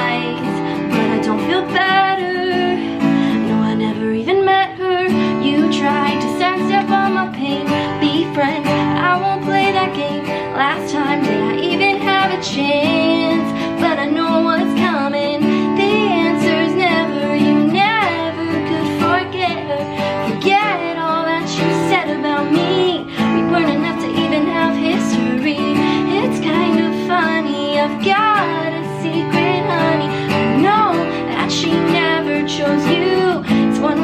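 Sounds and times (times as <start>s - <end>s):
acoustic guitar strumming: 0.0s - 34.0s
woman singing: 0.0s - 34.0s.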